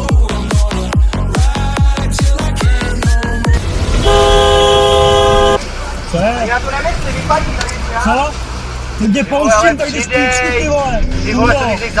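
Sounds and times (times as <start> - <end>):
car horn blast: 4.0 - 5.6.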